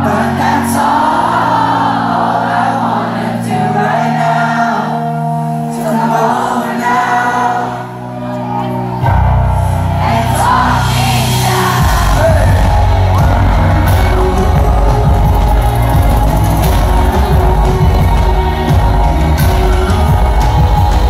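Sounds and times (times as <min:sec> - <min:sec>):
live pop concert music: 0:00.0 - 0:21.0
person singing: 0:00.0 - 0:21.0
heavy bass beat: 0:09.9 - 0:21.0.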